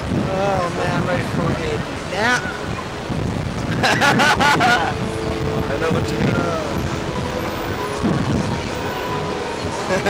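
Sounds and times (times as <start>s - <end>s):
rushing air rumble: 0.0s - 10.0s.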